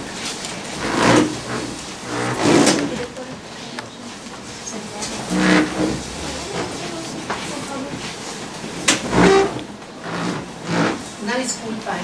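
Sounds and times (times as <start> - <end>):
chair scraping across floor: 0.0 - 3.1, 4.4 - 11.2
people shuffling about: 0.0 - 10.4.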